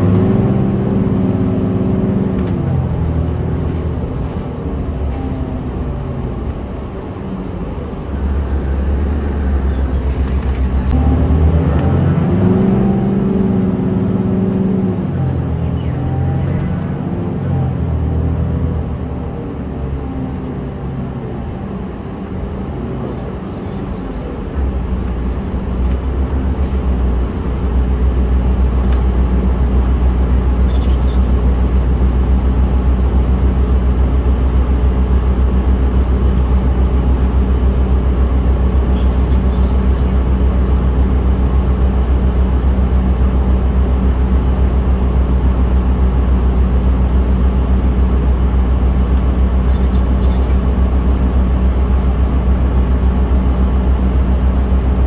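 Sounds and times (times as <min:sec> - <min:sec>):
bus engine idling: 0:00.0 - 0:12.4, 0:13.4 - 0:55.0.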